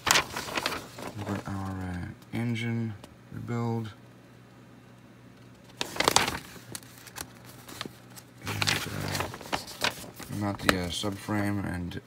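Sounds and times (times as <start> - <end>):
paper page being turned: 0.0 - 2.0, 5.6 - 11.2
faint low hum: 0.0 - 12.0.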